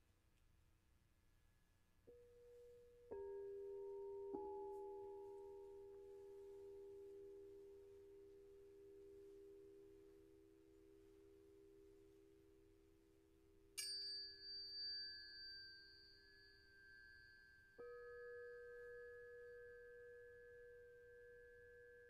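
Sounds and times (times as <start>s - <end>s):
low tuning fork tones: 2.0s - 22.0s
tuning fork struck ringing high: 2.1s - 12.0s, 13.7s - 22.0s.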